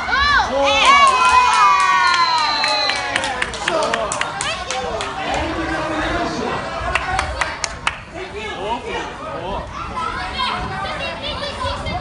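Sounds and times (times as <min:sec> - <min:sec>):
spectators shouting and cheering: 0:00.0 - 0:08.0.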